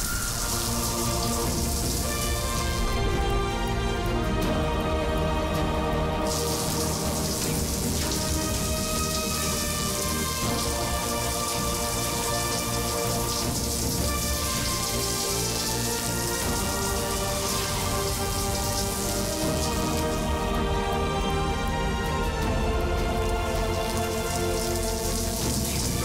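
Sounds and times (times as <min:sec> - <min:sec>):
background music: 0:00.0 - 0:26.0
rain hissing: 0:00.0 - 0:26.0.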